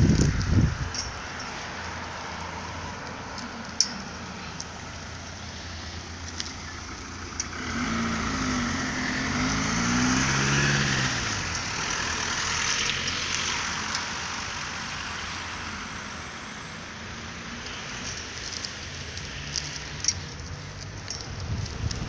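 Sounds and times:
car driving past: 0:04.5 - 0:15.9.

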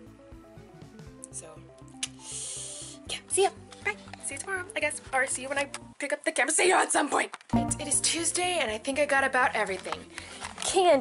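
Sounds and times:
background music with low beat: 0:00.0 - 0:02.3, 0:07.6 - 0:09.7
breathy hiss: 0:02.1 - 0:03.1.

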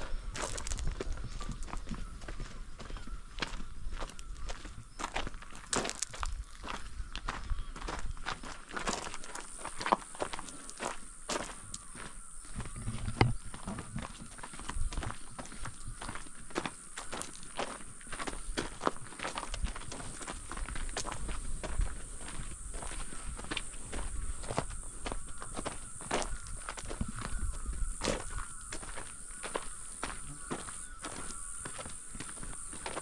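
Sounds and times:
footsteps on gravel: 0:00.0 - 0:33.0.

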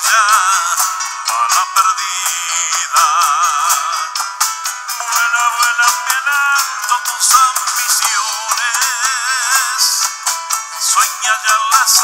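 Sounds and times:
acoustic guitar: 0:00.0 - 0:12.0
man singing with vibrato: 0:00.0 - 0:12.0.

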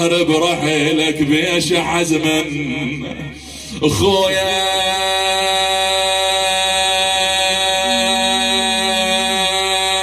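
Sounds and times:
man singing over loudspeaker: 0:00.0 - 0:10.0
faint higher tone: 0:07.8 - 0:09.6.

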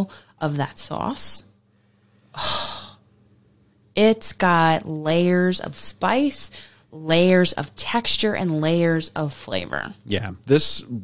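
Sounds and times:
person talking: 0:10.1 - 0:11.0.

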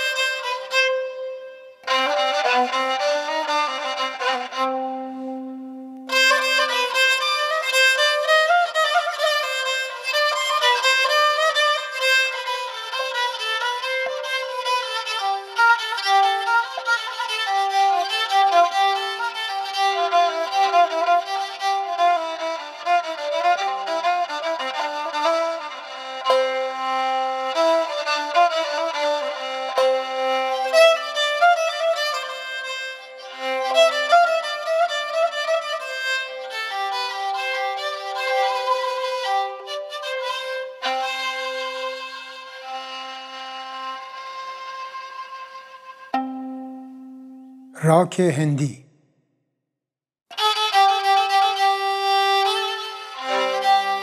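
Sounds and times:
bowed spike fiddle melody: 0:00.0 - 0:27.3, 0:28.1 - 0:47.7.

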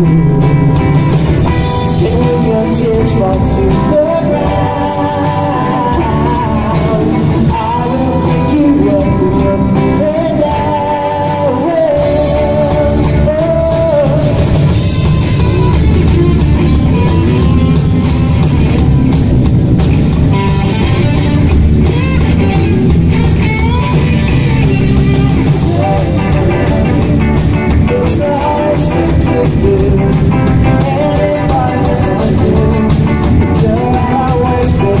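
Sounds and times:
man singing: 0:00.0 - 0:17.5, 0:23.4 - 0:35.0
bass guitar: 0:00.0 - 0:35.0
drum kit: 0:00.0 - 0:35.0
electric guitar: 0:00.0 - 0:35.0.

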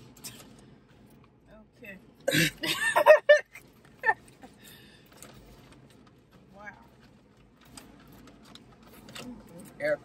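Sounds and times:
air conditioning hum: 0:00.0 - 0:10.0.

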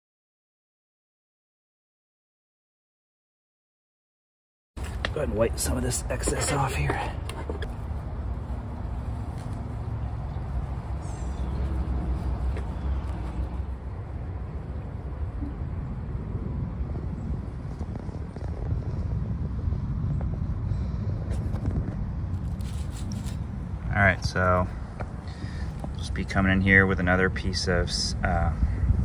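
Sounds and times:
low outdoor rumble: 0:04.8 - 0:29.0.

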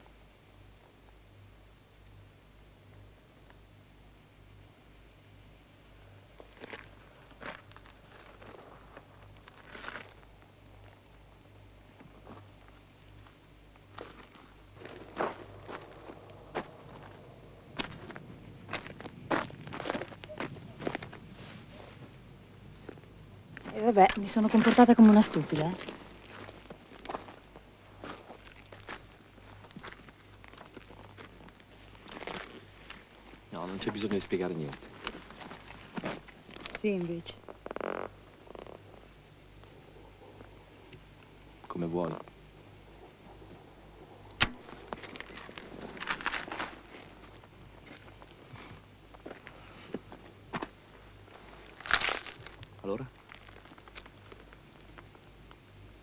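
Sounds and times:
footsteps on gravel: 0:13.2 - 0:22.2, 0:23.6 - 0:33.1, 0:44.6 - 0:48.3, 0:49.2 - 0:54.5
sharp click: 0:44.4 - 0:44.6.

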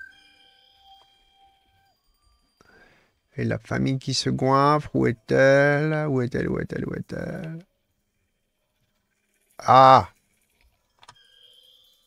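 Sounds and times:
faint held tone: 0:00.0 - 0:10.5, 0:11.1 - 0:12.0.

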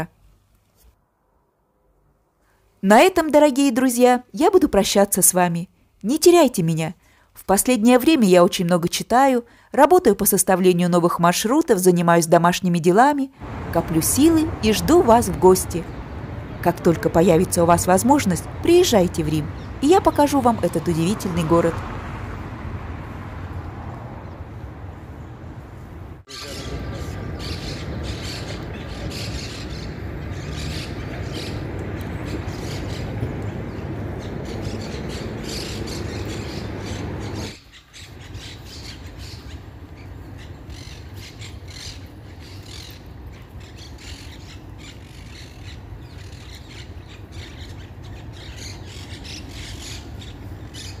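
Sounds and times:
traffic rumble: 0:00.0 - 0:51.0
distant city hum: 0:07.5 - 0:51.0
birds calling: 0:26.3 - 0:51.0.

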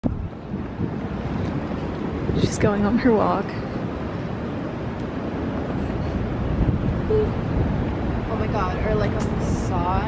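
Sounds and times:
city street traffic: 0:00.0 - 0:10.0
wind buffeting microphone: 0:00.0 - 0:10.0.

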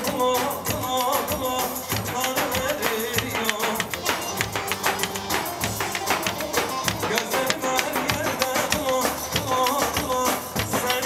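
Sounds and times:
dance music by band: 0:00.0 - 0:11.0
fast steady drumbeat: 0:00.0 - 0:11.0
held melody line: 0:00.0 - 0:11.0.

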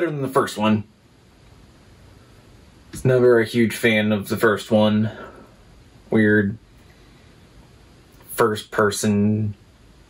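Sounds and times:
person speaking: 0:00.0 - 0:00.9, 0:02.9 - 0:06.7, 0:08.1 - 0:09.6
faint room noise hiss: 0:00.0 - 0:10.0
short breath: 0:05.1 - 0:05.7, 0:06.8 - 0:07.6.

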